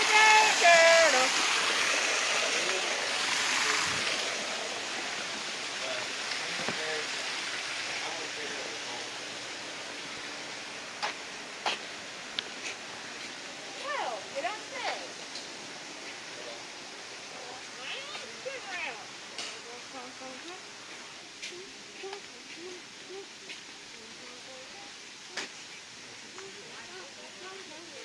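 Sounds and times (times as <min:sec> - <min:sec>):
high gliding calls: 0:00.0 - 0:06.6
indistinct background voices: 0:16.1 - 0:28.0.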